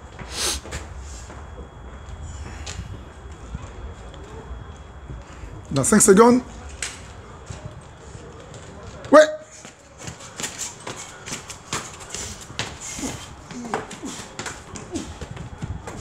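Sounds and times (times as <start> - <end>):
footsteps running up concrete stairs: 0.0 - 16.0
man shouting: 9.1 - 9.5.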